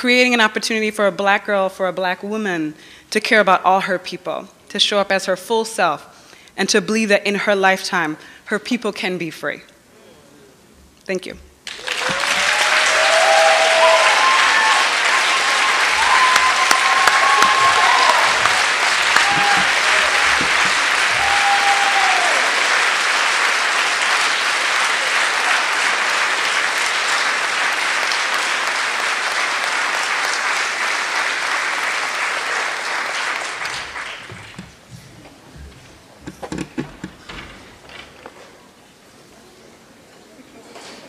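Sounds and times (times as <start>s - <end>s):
audience applauding: 11.6s - 34.9s
audience cheering and calling: 11.7s - 28.8s.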